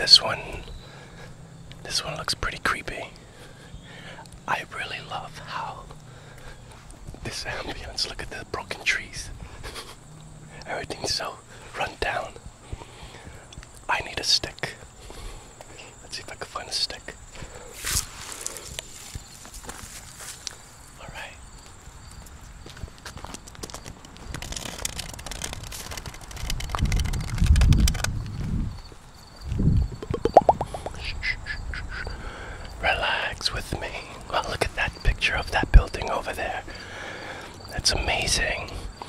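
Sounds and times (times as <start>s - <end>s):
footsteps on asphalt: 5.3s - 7.3s, 12.3s - 13.9s, 14.7s - 16.0s, 17.3s - 31.0s
microphone rumbles: 24.3s - 32.0s.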